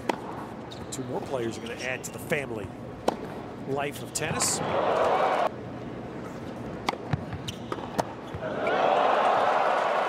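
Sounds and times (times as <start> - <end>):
rackets hitting tennis ball: 3.0 - 3.4, 6.8 - 8.5
crowd cheering and applause: 4.7 - 5.5, 8.4 - 10.0.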